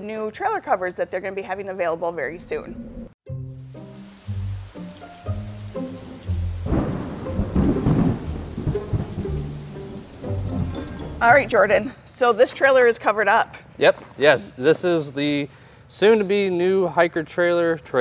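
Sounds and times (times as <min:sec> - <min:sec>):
held musical notes: 0:03.3 - 0:11.9
rain hiss: 0:03.3 - 0:11.9
thunder rumble: 0:05.7 - 0:11.8.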